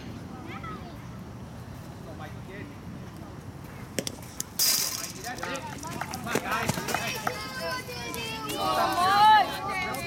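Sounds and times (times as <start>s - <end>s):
chain-link fence rattling: 4.6s - 6.0s
spectators' voices: 5.0s - 10.0s.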